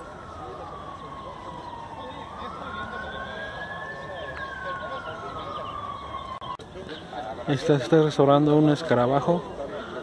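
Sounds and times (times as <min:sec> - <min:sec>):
siren wailing: 0:00.0 - 0:06.6.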